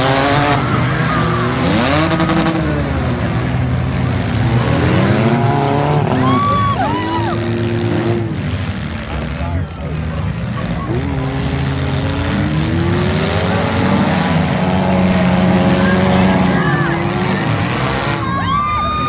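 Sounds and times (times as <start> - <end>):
car engines revving: 0.0 - 19.0
engine climbing in pitch: 0.0 - 19.0.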